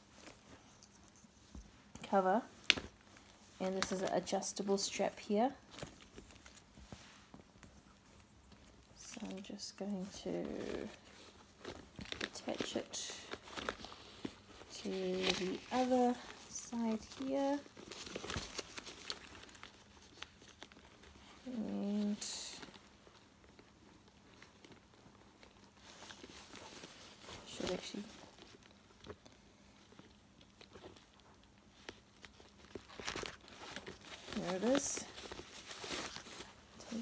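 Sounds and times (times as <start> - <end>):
tissue paper rustling: 0.0 - 37.0.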